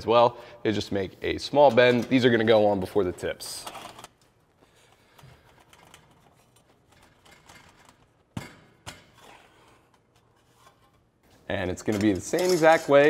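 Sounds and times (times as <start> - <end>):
metal pipe rubbing and handling: 9.0 - 13.0.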